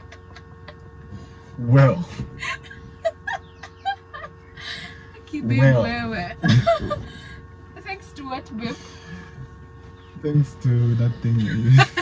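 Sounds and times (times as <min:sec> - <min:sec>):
woman laughing: 0:00.0 - 0:01.0, 0:02.4 - 0:07.4, 0:11.4 - 0:12.0.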